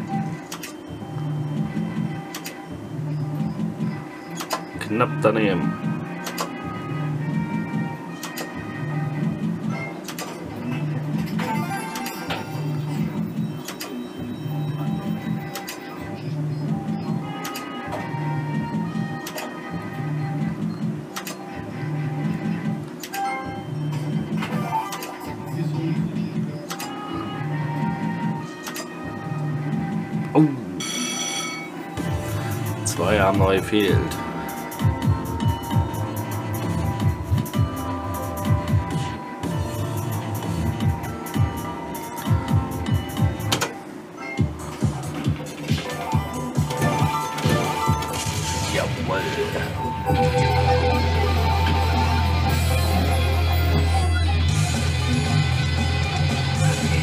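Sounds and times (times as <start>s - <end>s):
slot machine background music: 0.0s - 57.0s
slot machine reel clicks: 11.2s - 12.7s, 24.5s - 25.4s
bright win chime: 30.8s - 31.8s.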